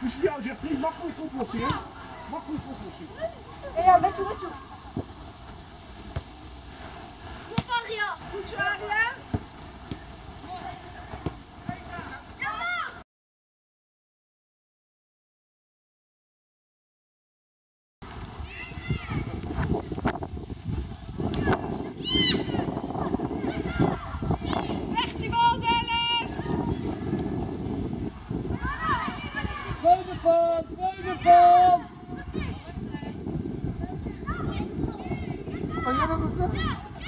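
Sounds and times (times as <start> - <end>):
outdoor field noise: 0.0 - 13.0, 18.0 - 37.0
children shouting: 12.1 - 13.0, 22.0 - 24.8, 28.6 - 29.8
child yelling: 12.4 - 13.0, 22.0 - 22.7, 28.6 - 29.8.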